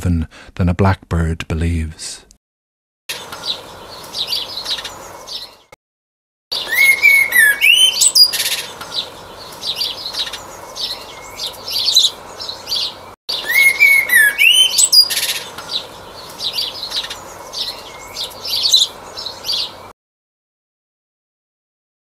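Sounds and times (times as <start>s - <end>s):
blackbird singing: 3.1s - 5.8s, 6.5s - 19.9s.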